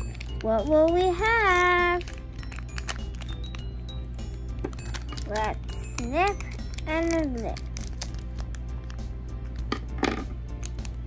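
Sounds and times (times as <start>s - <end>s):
foil packet crinkling and rustling: 0.0s - 3.6s, 4.7s - 9.0s
quiet background music: 0.0s - 11.0s.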